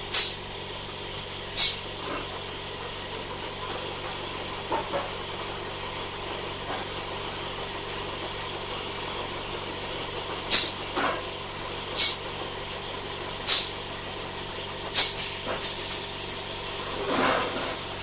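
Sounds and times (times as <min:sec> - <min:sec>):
compressed air hissing: 0:00.1 - 0:00.4, 0:01.6 - 0:01.8, 0:10.5 - 0:10.8, 0:12.0 - 0:12.2, 0:13.4 - 0:13.8, 0:14.9 - 0:16.3.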